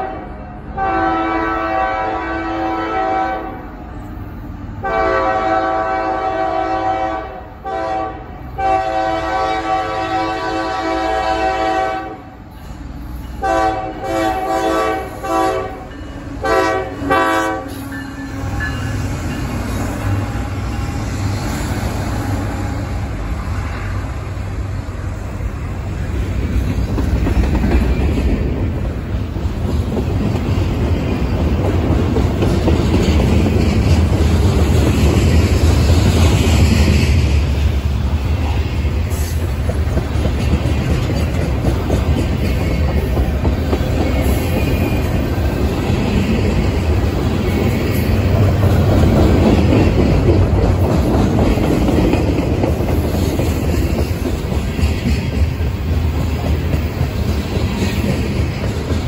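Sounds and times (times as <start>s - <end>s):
locomotive horn chord blasts: 0.0s - 3.6s, 4.8s - 12.3s, 13.4s - 17.9s
diesel locomotive passing: 0.0s - 59.0s
freight cars rumble and wheel clatter: 0.0s - 59.0s.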